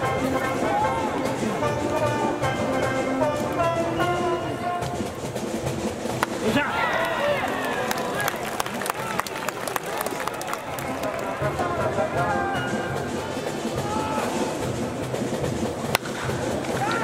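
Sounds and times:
cheering section music and voices: 0.0 - 5.1, 6.3 - 15.3, 16.1 - 17.0
stadium crowd noise: 0.0 - 17.0
bat cracking ball: 6.0 - 6.6, 15.8 - 17.0.

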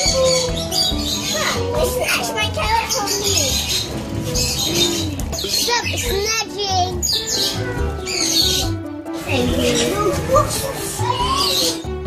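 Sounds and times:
high chirping sounds: 0.0 - 12.0
music with steady beat: 0.0 - 12.0.

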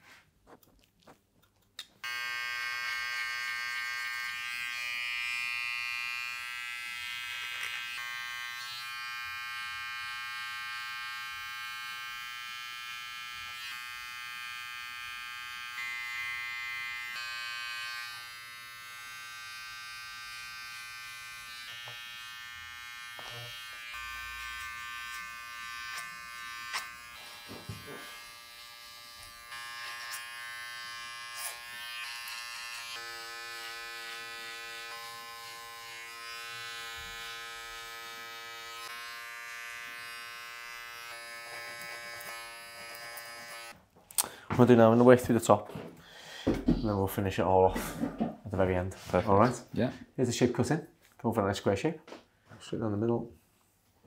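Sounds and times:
electric hair clippers buzzing: 2.0 - 43.8.

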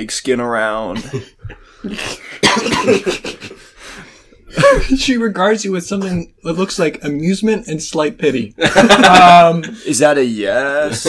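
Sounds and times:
person coughing: 1.0 - 3.6.

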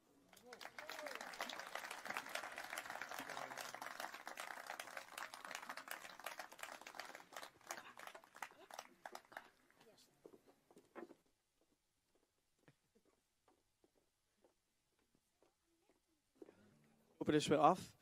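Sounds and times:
audience clapping: 0.0 - 9.9.

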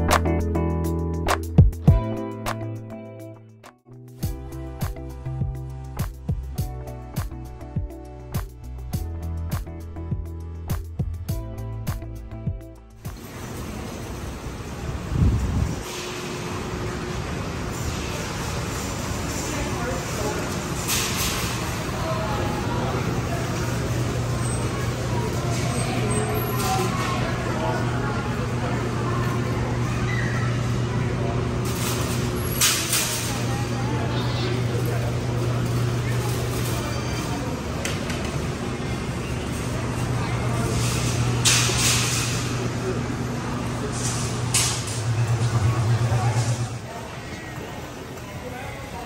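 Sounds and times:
low hum of ventilation: 13.1 - 49.0
shoppers moving about: 13.1 - 49.0
indistinct voices: 19.2 - 49.0.

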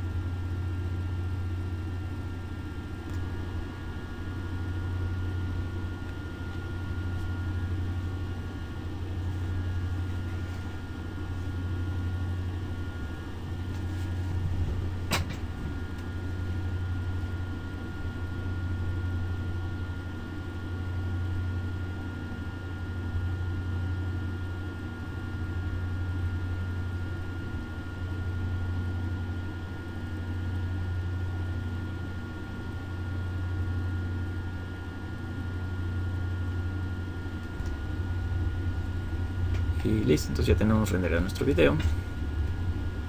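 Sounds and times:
high whine: 0.0 - 20.2, 36.2 - 43.0
low hum: 0.0 - 43.0.

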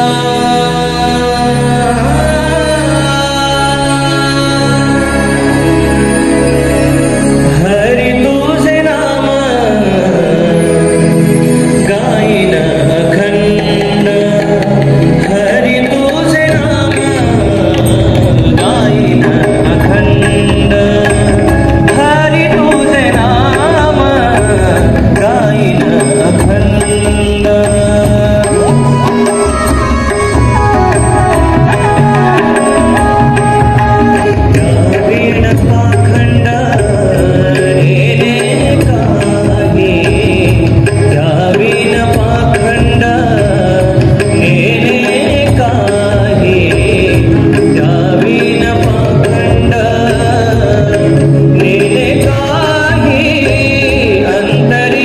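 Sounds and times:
harmonium drone: 0.0 - 55.0
person singing devotional song: 0.0 - 55.0
tabla drumming: 0.0 - 55.0.

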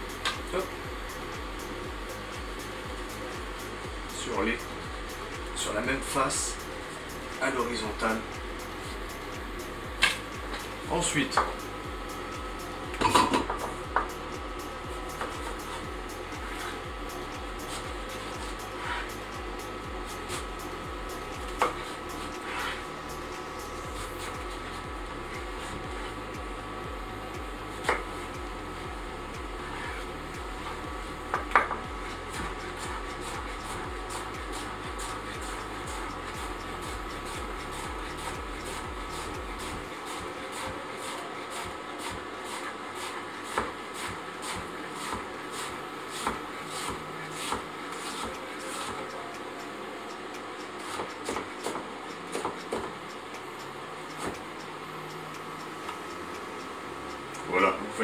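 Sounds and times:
steady background hum: 0.0 - 58.0.

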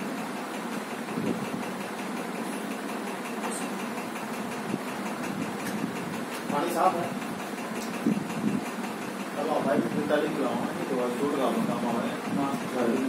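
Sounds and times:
motor humming: 0.0 - 13.0
fast even ticking: 0.3 - 13.0.

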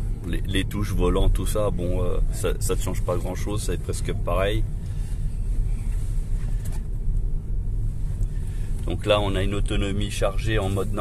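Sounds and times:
road and tyre noise in car cabin: 0.0 - 11.0.

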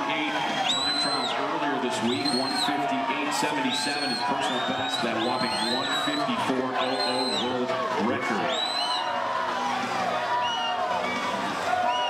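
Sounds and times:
spectators cheering and shouting: 0.0 - 12.0.

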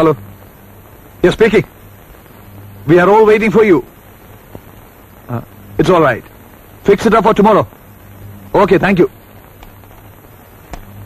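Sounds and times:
film soundtrack hiss and hum: 0.0 - 11.0
man speaking: 5.3 - 6.2, 8.5 - 9.1.

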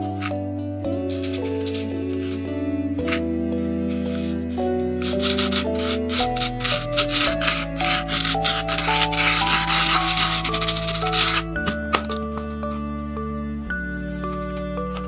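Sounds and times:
spoon scraping sand: 4.0 - 11.5.

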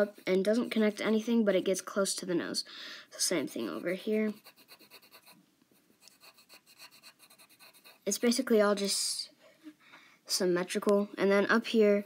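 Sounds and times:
pencil scratching on paper: 0.0 - 1.4, 3.3 - 8.5.

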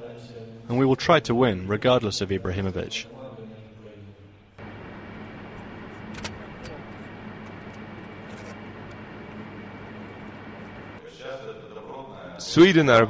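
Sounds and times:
distant call: 4.6 - 11.0
low hum: 4.6 - 11.0.

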